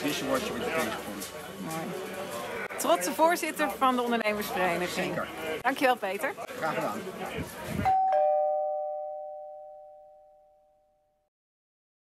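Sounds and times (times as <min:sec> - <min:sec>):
two-note ding-dong chime: 0:07.9 - 0:11.1.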